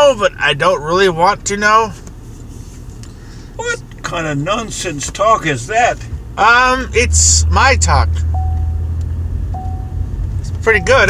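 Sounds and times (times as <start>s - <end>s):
car rumble from inside cabin: 0.0s - 11.0s
short electronic beeps: 8.3s - 8.9s, 9.6s - 10.0s.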